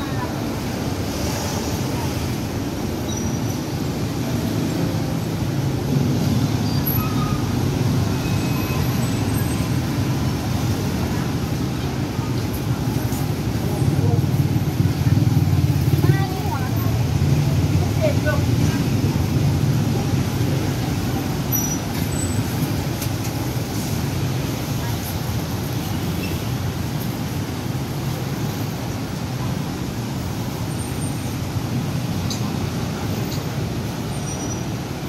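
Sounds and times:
heavy road traffic: 0.0s - 35.0s.

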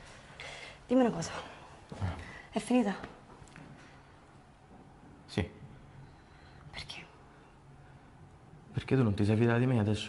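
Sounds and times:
faint low hum: 0.0s - 10.0s
woman whispering: 6.7s - 7.3s.

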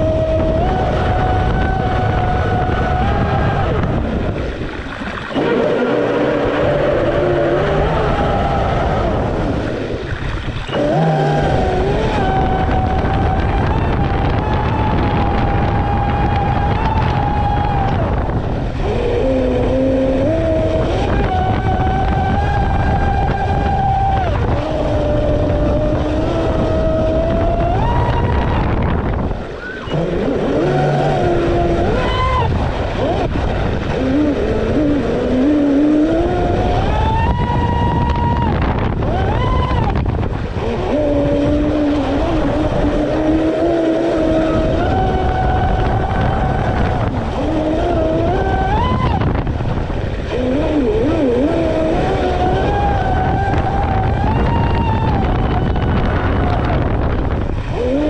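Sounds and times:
rush of water: 0.0s - 58.0s
electric motor whining: 10.6s - 58.0s.

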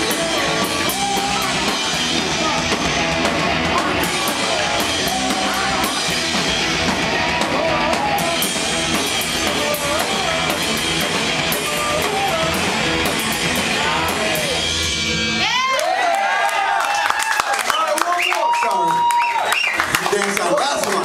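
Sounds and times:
person singing: 0.0s - 14.8s
drum kit with cymbal hits: 0.0s - 15.7s
electric guitar: 0.0s - 15.8s.

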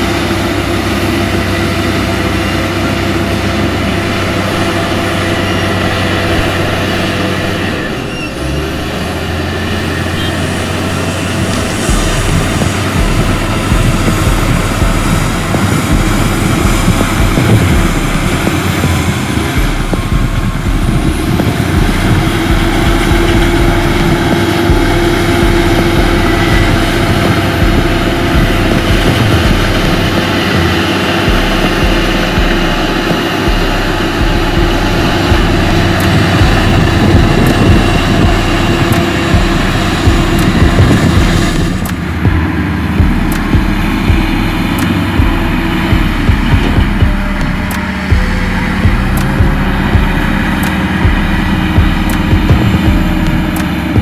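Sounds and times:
bulldozer diesel engine running: 0.0s - 54.0s
steady whine: 0.0s - 54.0s.

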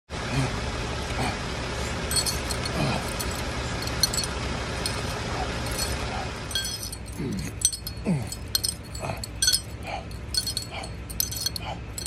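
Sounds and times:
man grunting: 0.2s - 1.5s, 2.7s - 3.3s, 7.1s - 10.1s
low rumble and hiss: 0.2s - 12.0s.

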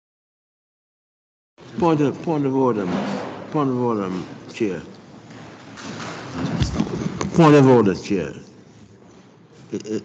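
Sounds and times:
knocks and clatter on desk: 2.8s - 3.5s, 5.2s - 7.5s.

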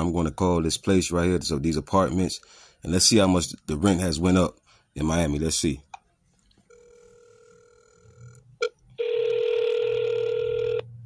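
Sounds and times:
telephone ringback tone: 6.7s - 11.0s.

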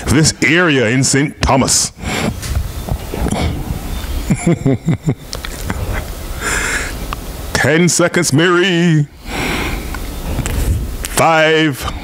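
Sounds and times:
person breathing into microphone: 2.0s - 3.8s, 5.7s - 7.0s, 9.1s - 10.9s.

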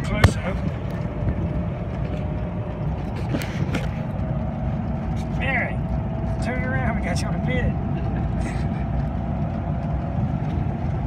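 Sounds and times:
golf cart driving: 0.0s - 11.0s.

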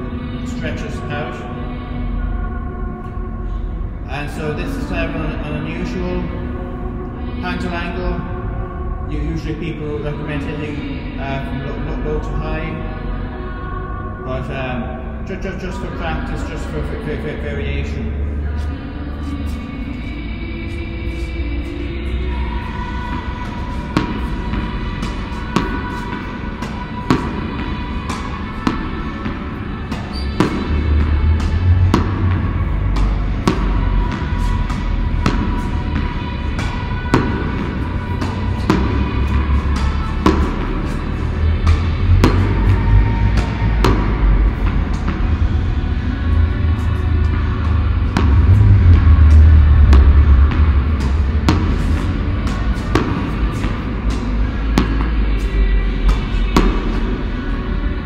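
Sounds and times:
background music with heavy bass: 0.0s - 58.0s.

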